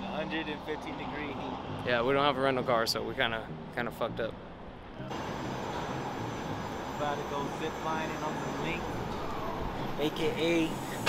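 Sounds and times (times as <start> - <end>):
city street roar: 0.0 - 11.0.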